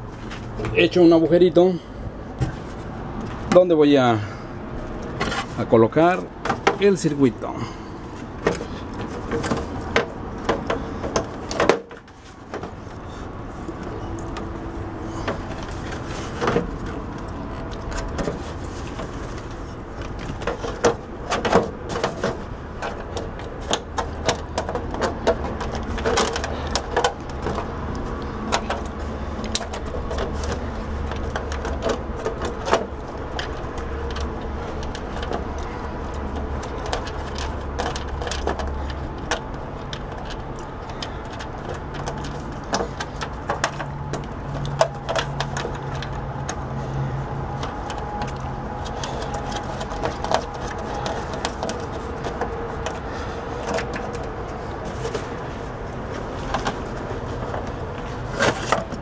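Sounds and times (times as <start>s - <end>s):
clicks and light plastic knocks: 8.2s - 59.0s.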